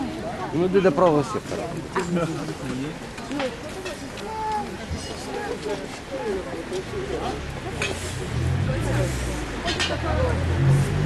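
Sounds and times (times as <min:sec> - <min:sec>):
voices talking: 0:00.0 - 0:10.9.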